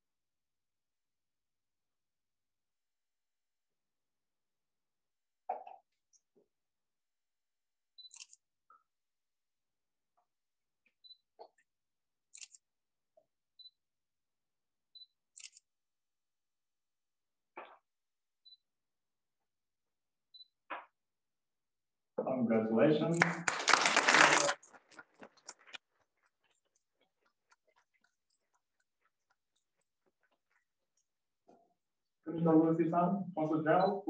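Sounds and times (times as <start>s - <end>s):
faint scattered applause: 23.1s - 25.8s.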